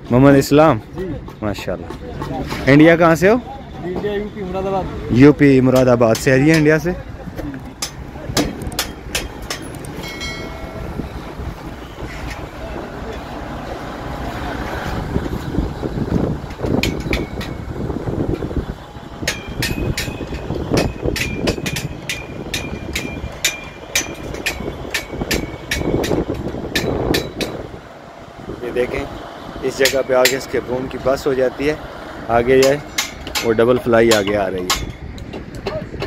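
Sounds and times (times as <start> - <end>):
construction site noise: 0.0 - 36.0
hammer blows with metallic ring: 5.6 - 7.0, 7.8 - 11.1, 16.6 - 18.5, 19.2 - 27.7, 29.7 - 31.0, 32.4 - 36.0
wind rumble: 6.7 - 36.0.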